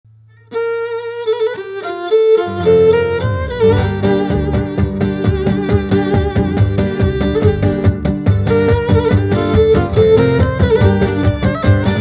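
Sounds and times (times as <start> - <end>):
bass and lower strings: 0.1 - 12.0
bowed lyra melody: 0.4 - 12.0.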